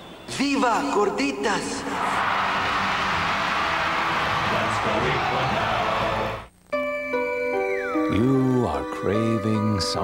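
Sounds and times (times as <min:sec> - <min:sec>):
commercial music: 0:02.3 - 0:10.0.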